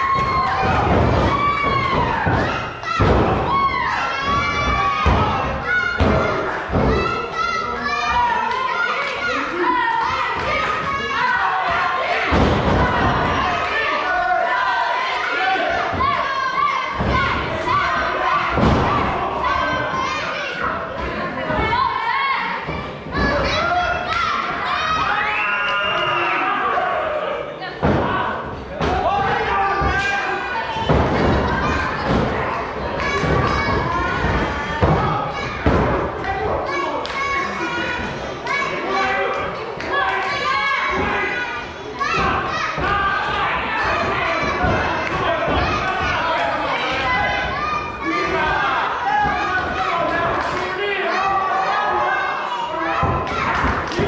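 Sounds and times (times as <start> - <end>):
children's voices: 0.0 - 25.2, 29.0 - 54.0
crowd shouting: 0.0 - 54.0.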